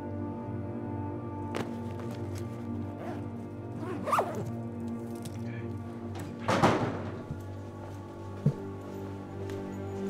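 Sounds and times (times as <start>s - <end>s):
background music: 0.0s - 10.0s
zipper being pulled shut: 1.6s - 4.6s.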